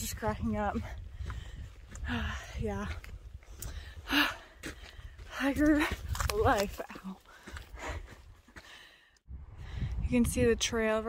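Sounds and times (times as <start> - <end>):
wind rumble on microphone: 0.0 - 6.8, 9.3 - 11.0.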